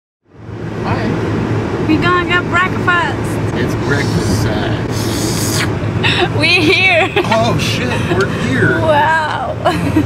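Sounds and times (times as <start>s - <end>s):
car engine hum and road noise: 0.2s - 10.0s
woman's voice: 1.9s - 3.4s, 6.0s - 7.3s, 8.7s - 10.0s.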